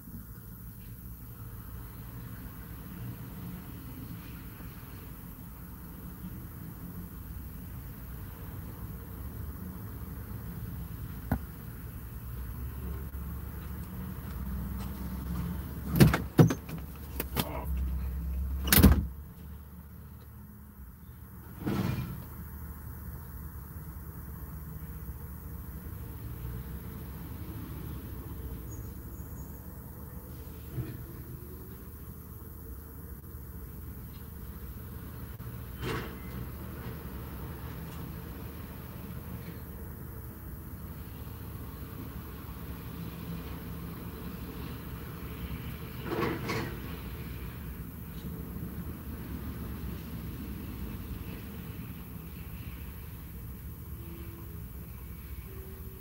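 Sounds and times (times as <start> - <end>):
low rumble inside vehicle cabin: 0.0 - 56.0.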